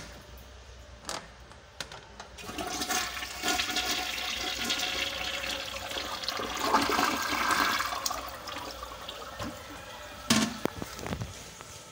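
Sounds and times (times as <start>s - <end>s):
toilet flushing: 2.4s - 10.7s.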